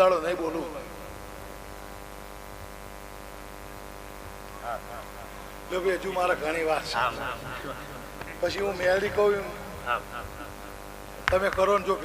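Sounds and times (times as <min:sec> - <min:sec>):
electrical hum from sound system: 0:00.0 - 0:12.0.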